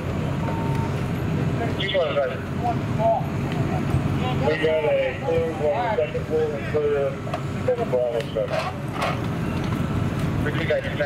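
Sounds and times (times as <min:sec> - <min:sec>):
diesel engine rumble: 0:00.0 - 0:11.0
short beep: 0:00.4 - 0:01.0.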